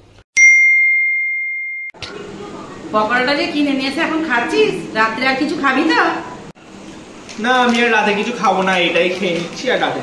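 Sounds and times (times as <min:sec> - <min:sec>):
bell-like ding: 0:00.4 - 0:02.0.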